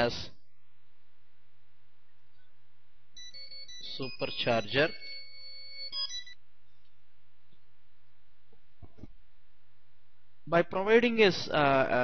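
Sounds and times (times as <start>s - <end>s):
electronic ringtone tones: 3.2s - 6.4s
low steady hum: 5.9s - 12.0s.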